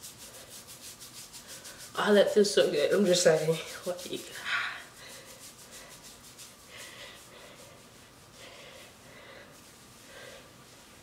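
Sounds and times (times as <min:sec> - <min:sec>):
fingertips rubbing hair: 0:00.0 - 0:08.6.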